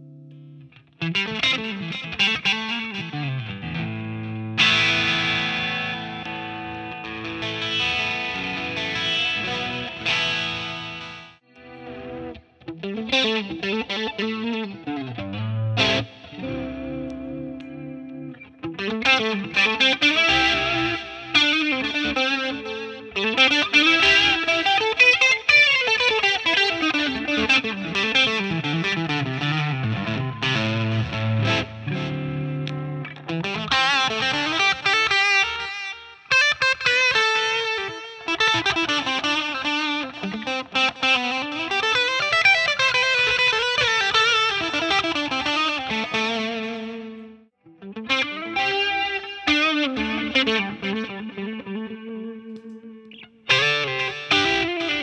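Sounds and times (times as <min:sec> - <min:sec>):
electric guitar lead line: 0:00.0 - 0:55.0.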